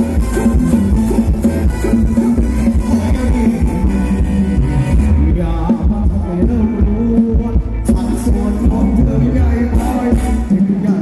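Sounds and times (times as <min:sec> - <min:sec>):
drum kit beat: 0:00.0 - 0:11.0
guitar: 0:00.0 - 0:11.0
heavy bass: 0:00.0 - 0:11.0.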